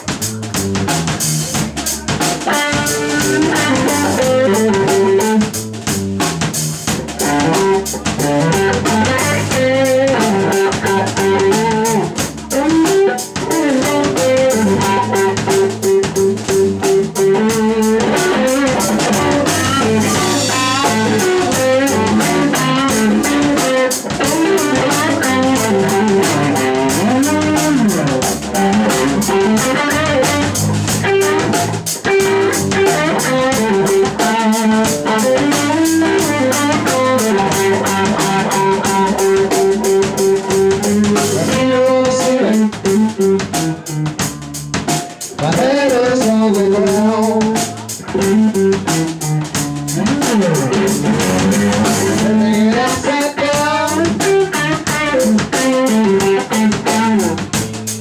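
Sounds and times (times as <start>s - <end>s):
blues band playing: 0.0s - 58.0s
electric guitar bending notes: 0.0s - 58.0s.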